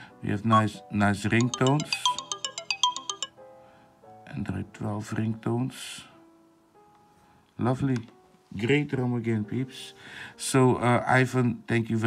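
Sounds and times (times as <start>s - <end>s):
phone ringtone melody: 0.5s - 0.8s, 1.4s - 3.4s.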